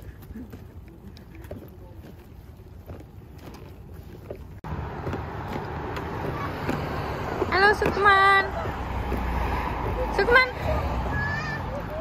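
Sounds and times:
stroller wheels rolling on concrete: 0.0 - 12.0.

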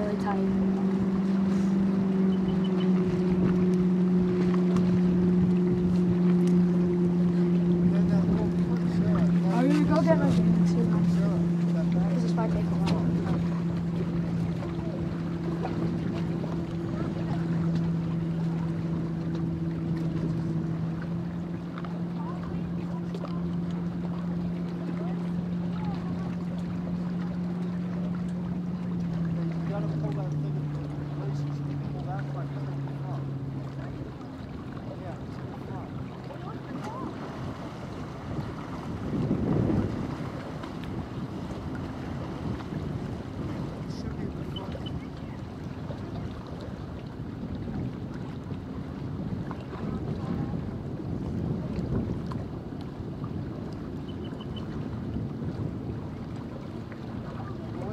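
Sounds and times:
watercraft engine idling: 0.0 - 57.9
wind and water noise: 0.0 - 57.9.

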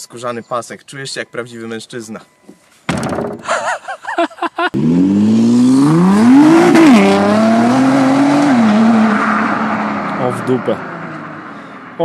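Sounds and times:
car engine accelerating hard: 4.8 - 12.0.

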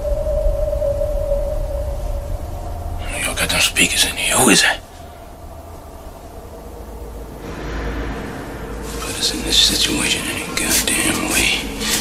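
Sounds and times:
high sustained tone: 0.0 - 11.4
low rumble: 0.0 - 12.0.

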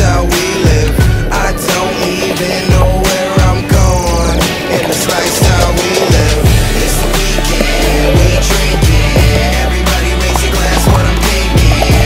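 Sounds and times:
kick drum: 0.0 - 1.4, 2.7 - 4.2, 8.1 - 9.6, 10.7 - 12.0
deep bass line: 0.0 - 1.7, 2.7 - 4.5, 5.4 - 12.0.

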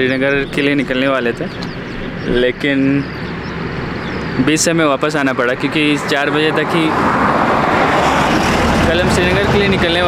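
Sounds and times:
road vehicle passing close: 0.0 - 10.0.

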